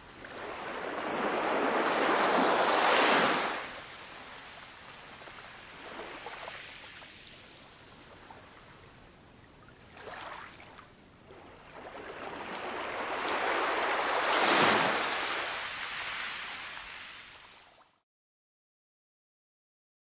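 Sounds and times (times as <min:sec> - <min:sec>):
ocean waves washing in: 0:00.0 - 0:08.6, 0:11.5 - 0:17.8.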